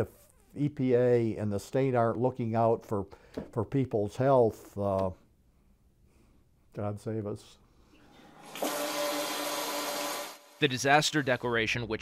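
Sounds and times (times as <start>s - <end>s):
faucet water running into sink: 8.2s - 10.6s.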